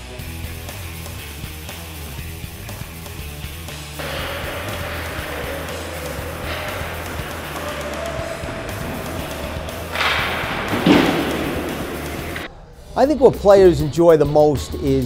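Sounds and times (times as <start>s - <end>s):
ice rink hiss: 4.0s - 12.5s
loud thud: 4.0s - 12.5s.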